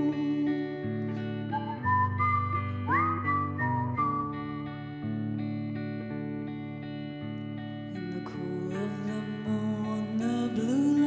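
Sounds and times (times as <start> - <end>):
strummed guitar chords: 0.0 - 11.0
whistled melody: 1.1 - 5.2.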